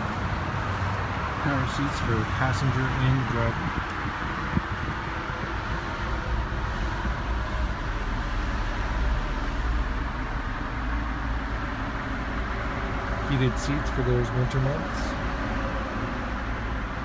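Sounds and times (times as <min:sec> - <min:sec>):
car idling with fan blowing: 0:00.0 - 0:17.0.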